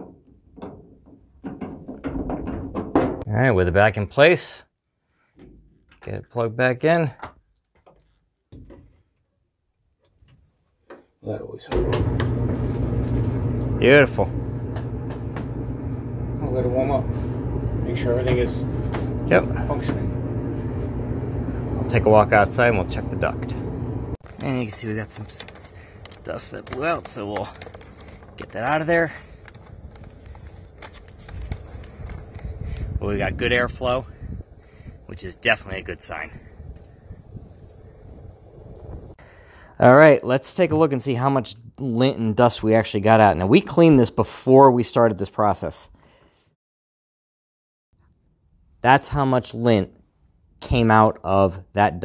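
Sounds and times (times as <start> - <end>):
exhaust air buffeting microphone: 11.7 - 39.6.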